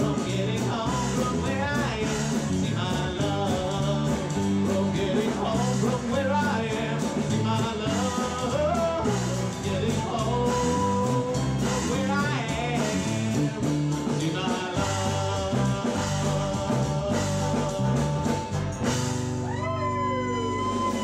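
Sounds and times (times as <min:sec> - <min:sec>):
bass: 0:00.0 - 0:21.0
drums with steady beat: 0:00.0 - 0:21.0.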